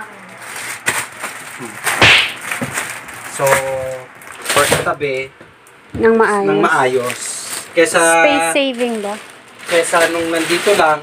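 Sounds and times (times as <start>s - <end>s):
plastic rustling: 0.0s - 5.0s, 6.9s - 11.0s
stiff plastic bag swish: 1.9s - 2.6s.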